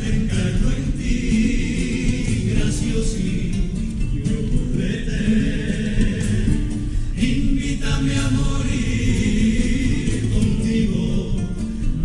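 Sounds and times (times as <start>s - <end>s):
guitars: 0.0s - 12.0s
male chorus singing: 0.0s - 12.0s.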